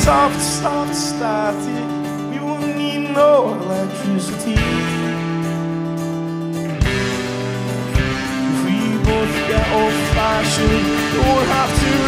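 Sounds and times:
electric guitar chords: 0:00.0 - 0:12.0
indie rock band playing: 0:00.0 - 0:12.0
strummed acoustic guitar: 0:00.0 - 0:12.0.

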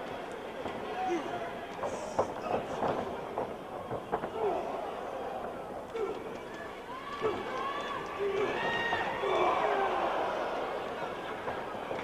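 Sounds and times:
crowd shouting: 0:00.7 - 0:12.0.

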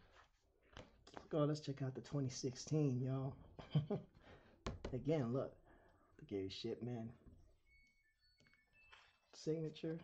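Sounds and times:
faint high beeps: 0:07.5 - 0:10.0.

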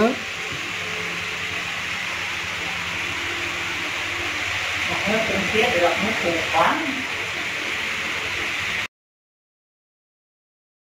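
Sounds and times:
water hissing through filters: 0:00.0 - 0:08.9.

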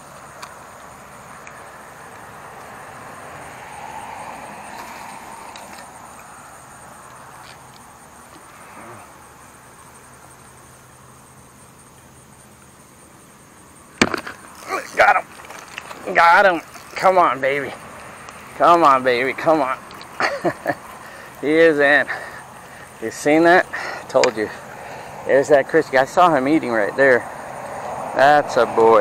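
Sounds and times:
high-pitched insect drone: 0:00.0 - 0:29.0
open-air background noise: 0:00.0 - 0:29.0.

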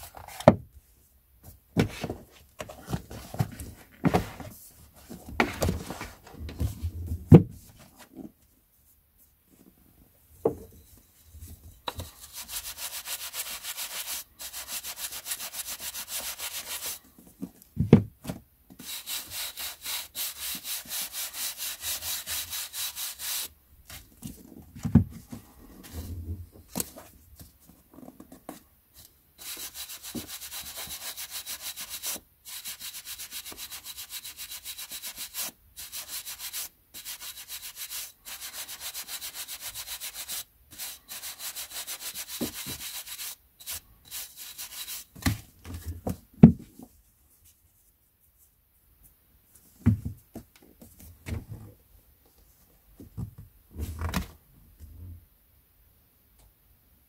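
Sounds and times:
dull thumps of books: 0:01.7 - 0:07.9, 0:17.3 - 0:18.5, 0:24.2 - 0:25.5, 0:45.2 - 0:46.9, 0:49.8 - 0:51.7, 0:53.0 - 0:54.4
brush sweeping over book pages: 0:12.0 - 0:17.0, 0:18.8 - 0:24.1.

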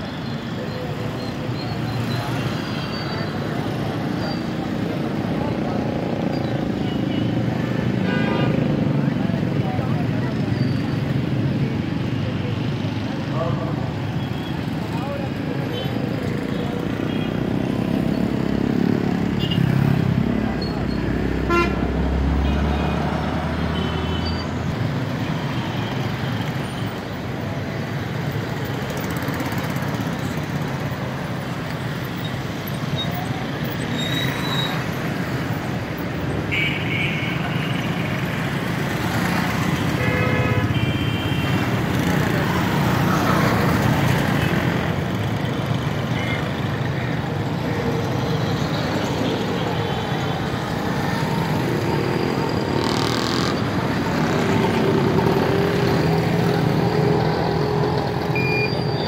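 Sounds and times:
street traffic of motorcycles: 0:00.0 - 0:59.0.

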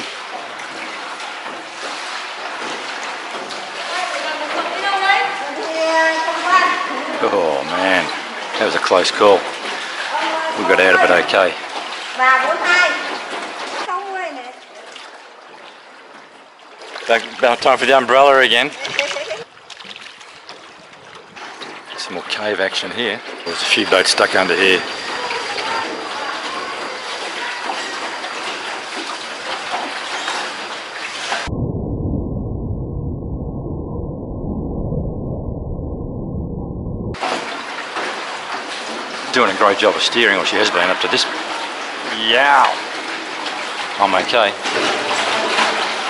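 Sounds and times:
water sloshing around boat: 0:00.0 - 0:31.5, 0:37.2 - 0:46.0
people speaking: 0:17.1 - 0:19.4, 0:42.1 - 0:42.8
muffled low rumble: 0:31.5 - 0:37.2.

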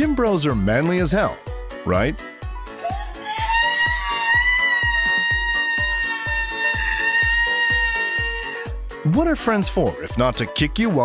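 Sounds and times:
background music with steady beat: 0:00.0 - 0:11.0
man screaming high-pitched: 0:03.0 - 0:08.6.

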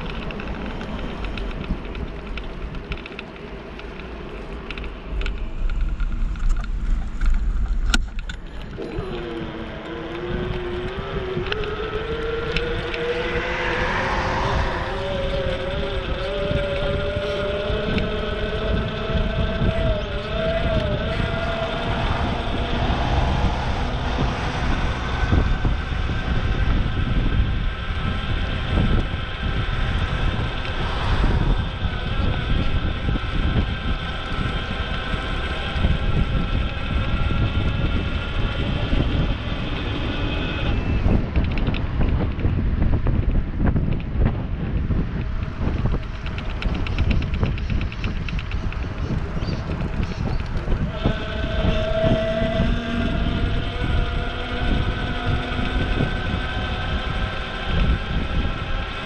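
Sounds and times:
wind rumbling on microphone: 0:00.0 - 0:59.0
bike whine rising in pitch: 0:04.8 - 0:59.0.

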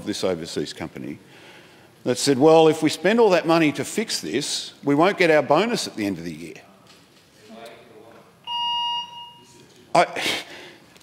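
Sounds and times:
electronic beep: 0:08.5 - 0:09.5.

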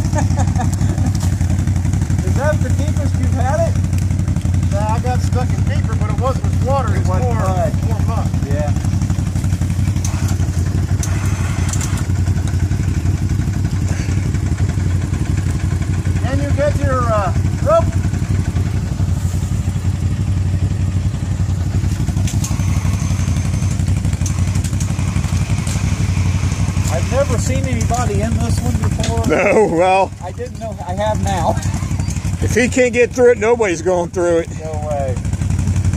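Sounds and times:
atv engine running steadily: 0:00.0 - 0:35.9.

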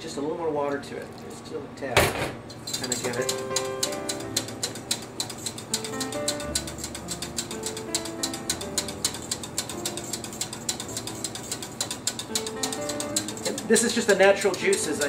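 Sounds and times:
whisk rattling in a metal saucepan: 0:02.4 - 0:15.0.

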